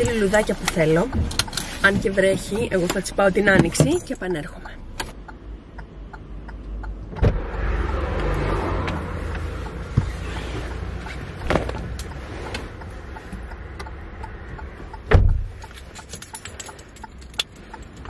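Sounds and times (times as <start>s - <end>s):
handling knocks and clicks: 0.0s - 4.2s, 15.0s - 18.0s
low car rumble: 0.0s - 18.0s.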